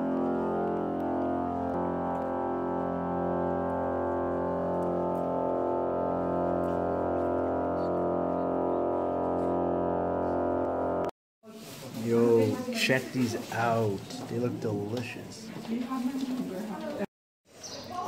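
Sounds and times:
pipe organ chords: 0.0 - 11.1.

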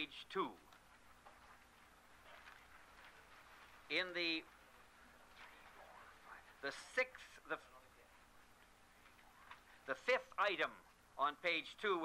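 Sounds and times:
man speaking: 0.0 - 0.7, 3.9 - 4.6, 5.2 - 8.3, 9.8 - 12.0
faint hiss: 0.0 - 12.0.

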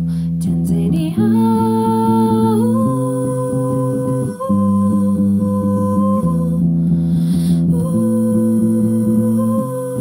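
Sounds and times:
electric bass guitar: 0.0 - 10.0
woman singing wordless melody: 0.3 - 6.8, 7.5 - 10.0.

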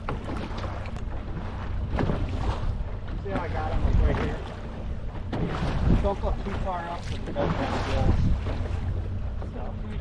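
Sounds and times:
boat engine humming: 0.0 - 10.0
wind buffeting microphone: 1.8 - 10.0.

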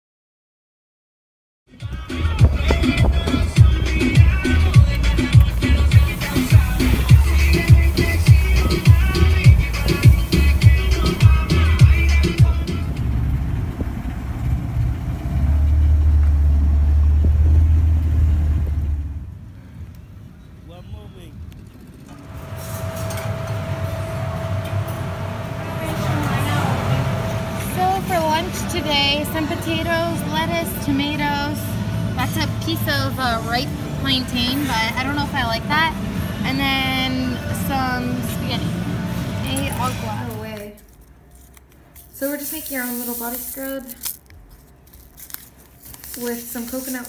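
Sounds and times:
background music with steady beat: 1.7 - 13.3
small boat engine rumble: 1.9 - 42.4.

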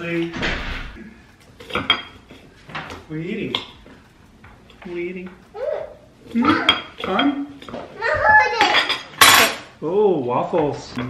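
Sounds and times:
cutlery clinking against plate: 6.3 - 7.8.

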